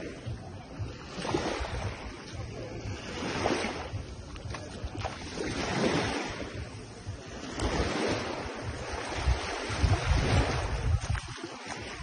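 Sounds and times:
small waves washing on sand: 0.0 - 12.0
wind buffeting microphone: 0.0 - 12.0.

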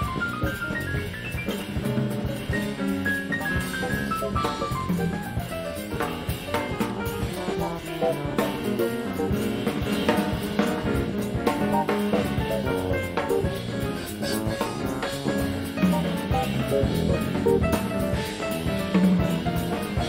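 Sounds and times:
drum kit: 0.0 - 20.0
electric bass: 0.0 - 20.0
piano: 0.0 - 20.0.

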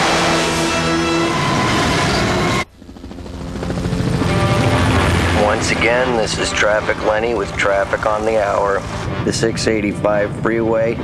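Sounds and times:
cartoon jet thruster rush: 0.0 - 2.7, 3.7 - 11.0
low engine drone: 0.0 - 11.0.

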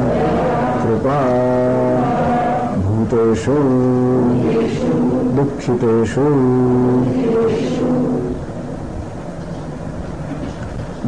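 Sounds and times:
man chanting a syllable: 0.0 - 8.4
low rumble and hiss: 0.0 - 11.0.

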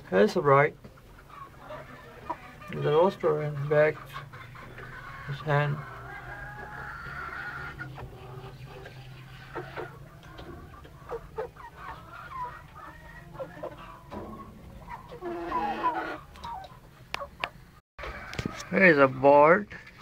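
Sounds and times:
hens and roosters clucking: 0.0 - 20.0.

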